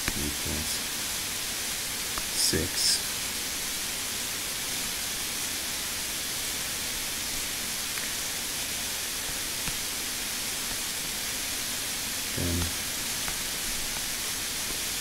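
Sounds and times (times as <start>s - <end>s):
recording hiss: 0.0s - 15.0s.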